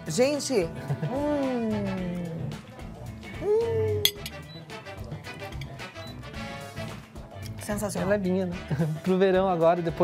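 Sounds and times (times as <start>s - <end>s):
soft background music: 0.0s - 10.0s
woman humming: 3.4s - 4.2s
tableware clink: 4.0s - 4.5s.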